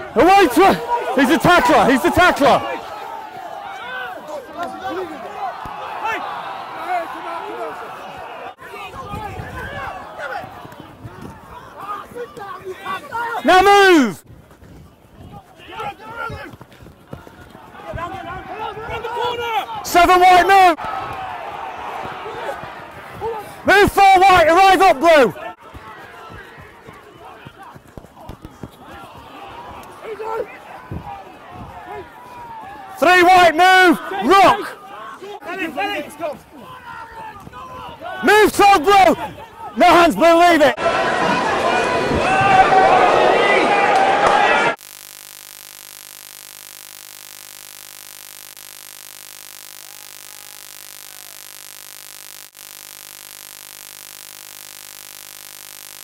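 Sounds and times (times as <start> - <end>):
electrical hum: 44.8 - 56.0.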